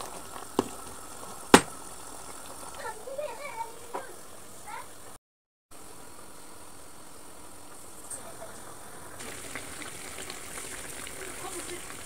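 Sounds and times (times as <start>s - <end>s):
meat and onions sizzling: 0.0s - 5.2s, 5.8s - 12.0s.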